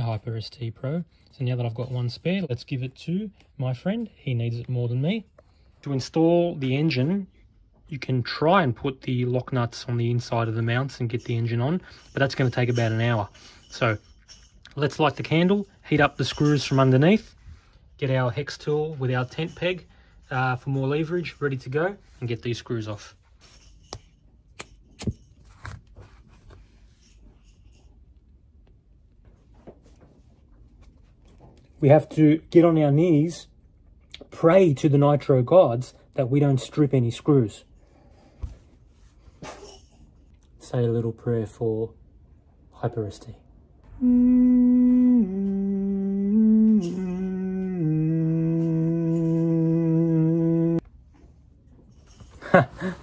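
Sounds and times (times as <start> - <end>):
tools and parts scraping: 11.0 - 17.3, 19.0 - 28.1
man humming a low chant: 43.8 - 50.8.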